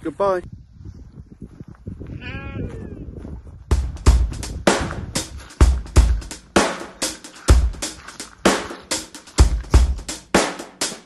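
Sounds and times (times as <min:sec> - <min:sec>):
sheep bleating: 0:02.1 - 0:02.9
drum-led music: 0:03.7 - 0:11.0.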